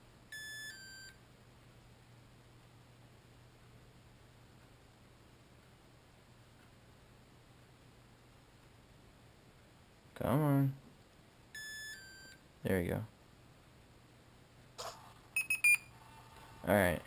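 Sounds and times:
faint low hum: 0:00.0 - 0:17.0
short electronic beeps: 0:15.4 - 0:15.9.

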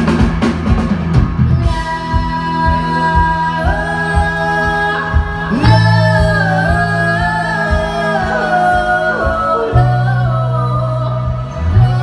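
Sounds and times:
rock band playing: 0:00.0 - 0:12.0
woman singing: 0:01.5 - 0:12.0.

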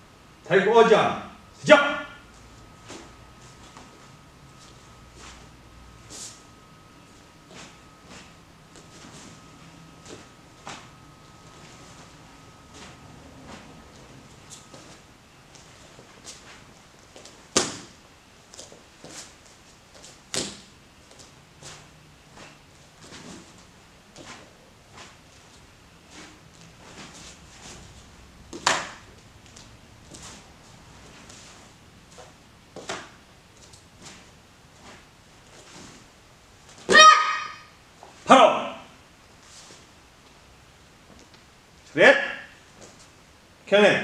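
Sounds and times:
person shouting: 0:36.9 - 0:37.7, 0:38.3 - 0:38.9.

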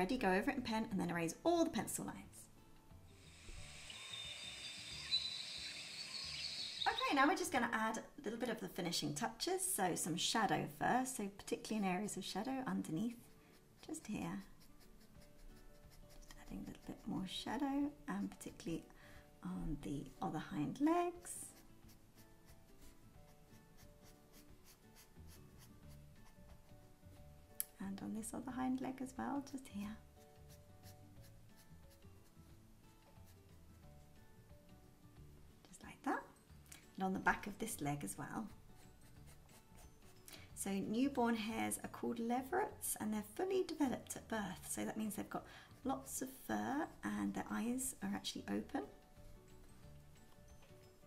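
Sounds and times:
quiet background music: 0:00.0 - 0:51.0
thin high chirps: 0:03.3 - 0:07.1
pen scratching on paper: 0:13.2 - 0:17.2, 0:21.5 - 0:26.9, 0:38.8 - 0:40.2.

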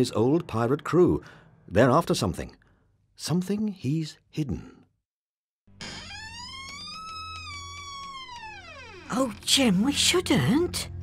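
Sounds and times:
wooden door hinges creaking: 0:05.8 - 0:10.2.

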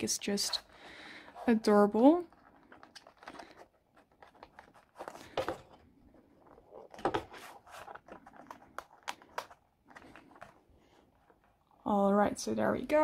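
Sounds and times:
plastic crinkling and clicking: 0:02.4 - 0:05.6, 0:06.4 - 0:10.6.

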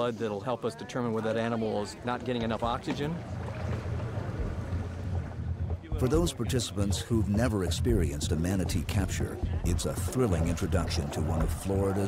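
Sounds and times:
low steady rumble: 0:03.2 - 0:11.7.

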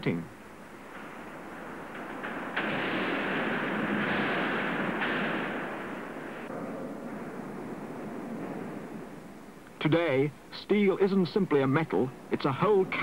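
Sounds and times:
heavy mill machinery noise: 0:00.4 - 0:09.8.

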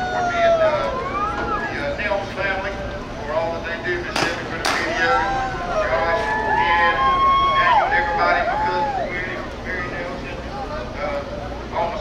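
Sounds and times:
people whooping: 0:00.0 - 0:01.8, 0:04.8 - 0:09.4.

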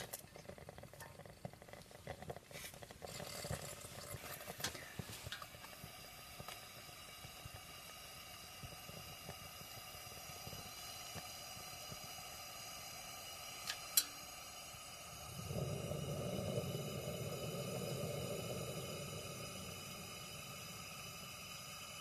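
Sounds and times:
faint crackles: 0:00.0 - 0:12.8
camping lantern hissing: 0:00.0 - 0:22.0
low rush of noise: 0:08.2 - 0:22.0.

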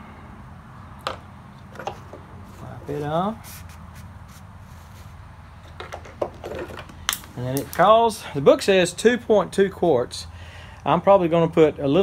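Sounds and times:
steady low hum: 0:00.0 - 0:12.0
paper towel rubbing on dipstick: 0:02.5 - 0:05.2.

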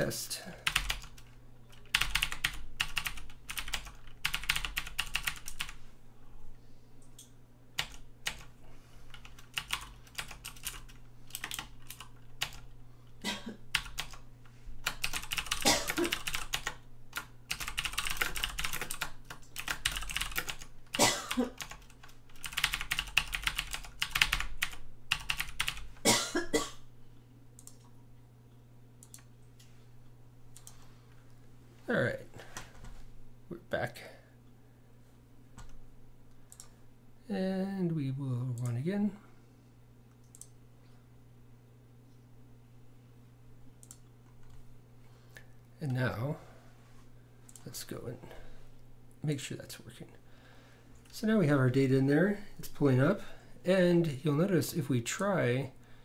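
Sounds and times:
low steady hum: 0:00.0 - 0:56.0
computer keyboard typing: 0:00.6 - 0:05.8, 0:07.1 - 0:08.5, 0:09.1 - 0:12.7, 0:13.7 - 0:14.2, 0:14.8 - 0:20.7, 0:21.6 - 0:25.9, 0:29.0 - 0:29.3, 0:30.5 - 0:30.8, 0:36.5 - 0:36.7, 0:40.2 - 0:40.5, 0:43.8 - 0:44.6.

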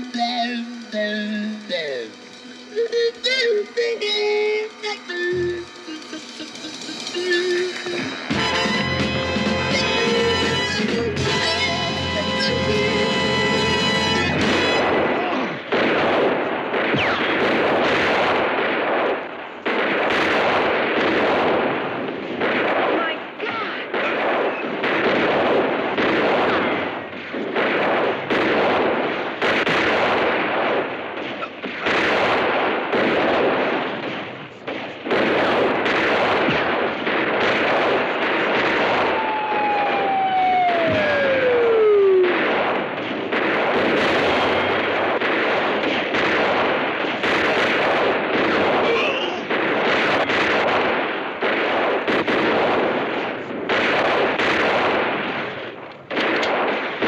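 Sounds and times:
rapid gunfire: 0:00.0 - 0:02.6, 0:03.2 - 0:57.0
falling whine: 0:00.0 - 0:14.9, 0:39.0 - 0:42.4.

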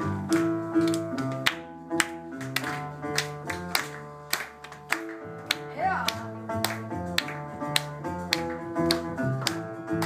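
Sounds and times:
double bass notes: 0:00.0 - 0:10.0.

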